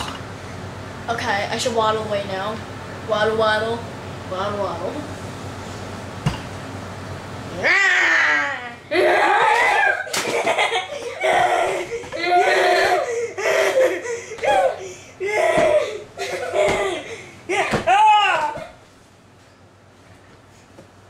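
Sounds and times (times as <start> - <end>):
children laughing: 7.8 - 18.8
slap: 9.6 - 10.5.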